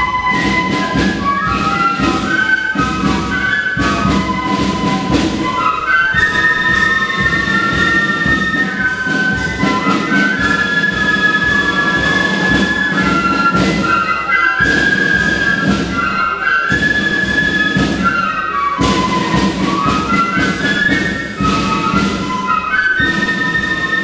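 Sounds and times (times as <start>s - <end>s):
drum beats: 0.0s - 24.0s
flute band playing: 0.0s - 24.0s.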